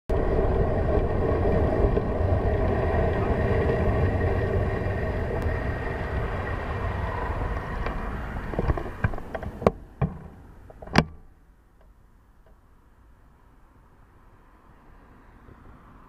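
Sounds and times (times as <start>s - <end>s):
wind noise on microphone: 0.1s - 11.2s
bicycle tyres rolling on road: 0.1s - 16.0s.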